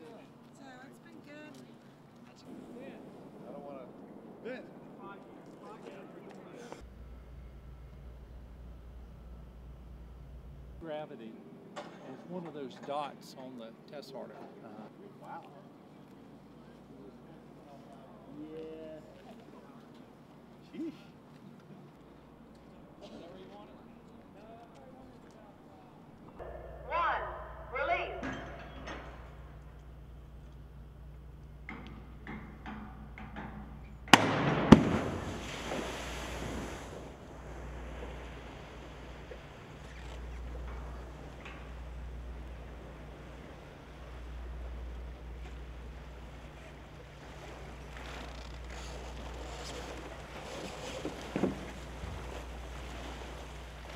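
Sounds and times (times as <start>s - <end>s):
person talking: 26.9s - 28.2s
sharp bangs: 34.1s - 35.7s
water splashing: 34.1s - 53.9s.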